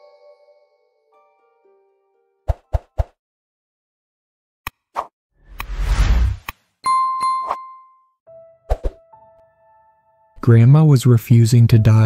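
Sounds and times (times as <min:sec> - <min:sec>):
whoosh: 0:05.4 - 0:06.5.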